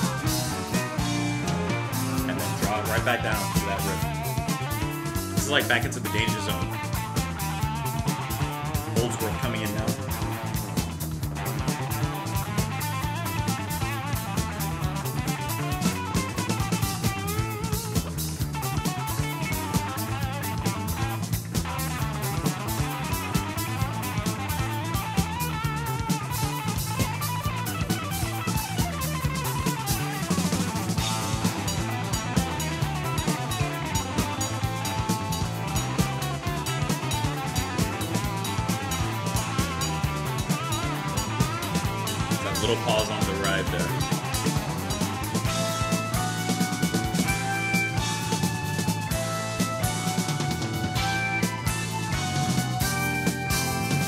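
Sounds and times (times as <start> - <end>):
busy drum kit with cymbals: 0.0 - 54.0
electric guitar: 0.0 - 54.0
steady bass line: 0.0 - 54.0.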